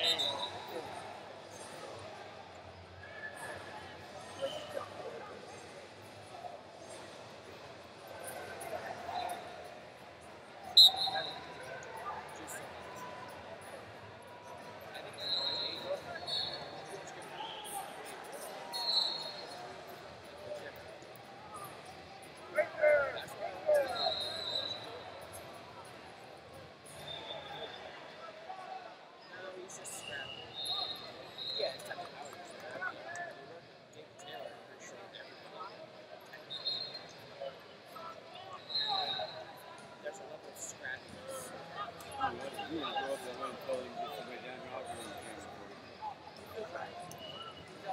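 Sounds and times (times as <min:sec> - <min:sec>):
whistle blasts: 0:00.0 - 0:00.6, 0:10.7 - 0:11.5, 0:15.2 - 0:16.6, 0:18.7 - 0:19.4.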